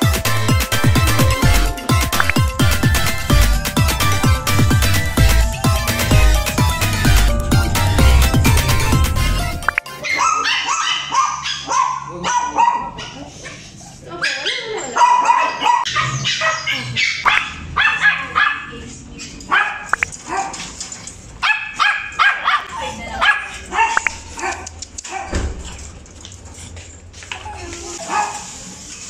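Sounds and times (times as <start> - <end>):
background music: 0.0 - 10.6
small dogs barking and yipping: 9.8 - 25.4, 27.3 - 29.0.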